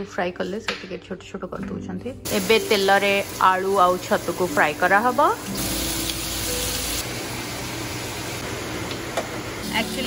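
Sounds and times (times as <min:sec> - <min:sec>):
food sizzling in a pan: 0:02.2 - 0:10.0.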